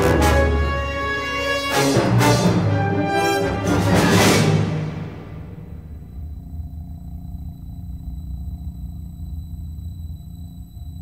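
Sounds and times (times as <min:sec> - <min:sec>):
low rumbling drone: 0:04.8 - 0:11.0.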